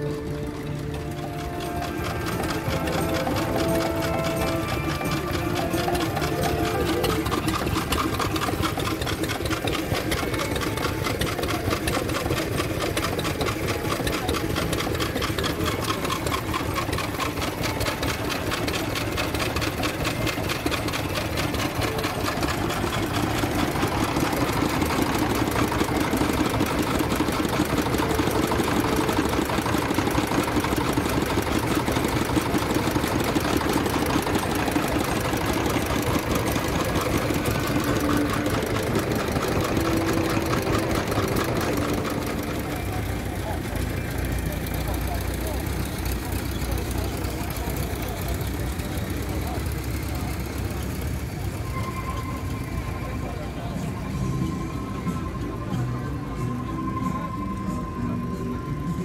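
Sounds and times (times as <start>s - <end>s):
stationary engines running: 0.0s - 59.0s.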